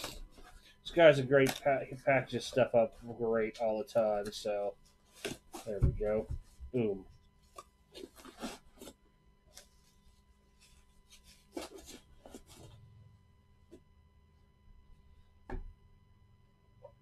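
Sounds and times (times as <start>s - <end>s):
bubble wrap crinkling: 3.6s - 12.8s.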